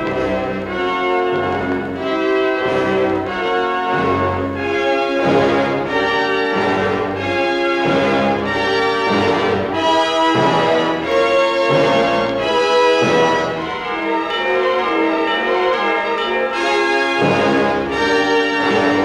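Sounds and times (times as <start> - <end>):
orchestral music on vinyl record: 0.0 - 19.0.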